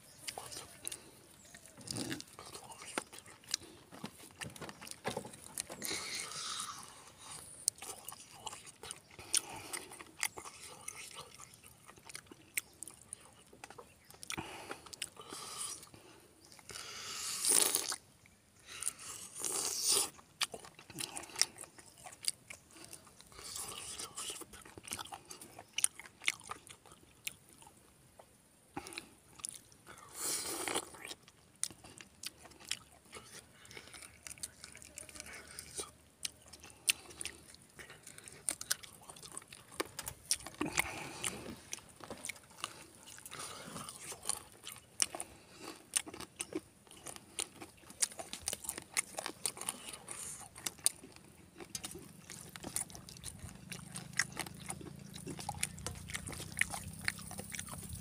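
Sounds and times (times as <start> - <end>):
chewing and crunching food: 0.0 - 58.0.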